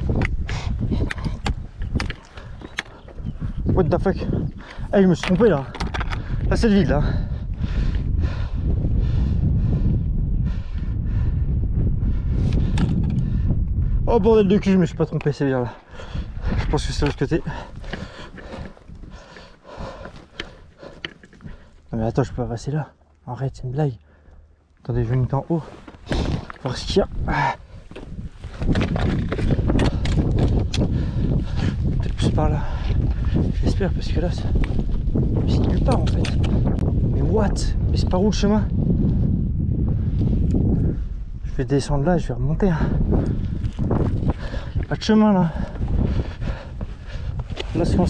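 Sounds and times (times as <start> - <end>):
wind buffeting microphone: 0.0 - 48.0
clicks and scrapes on rock: 16.5 - 21.9, 27.9 - 30.9, 35.6 - 36.8.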